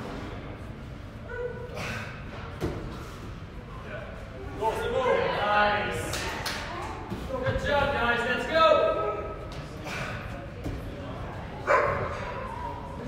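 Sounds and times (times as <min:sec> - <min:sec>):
voices shouting in a gym hall: 0:00.0 - 0:13.0.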